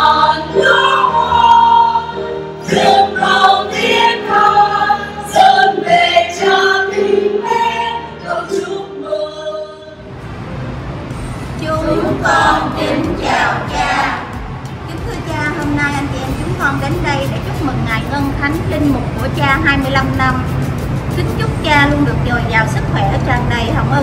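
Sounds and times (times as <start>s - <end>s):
choir singing a hymn: 0.0s - 10.0s, 11.5s - 14.6s.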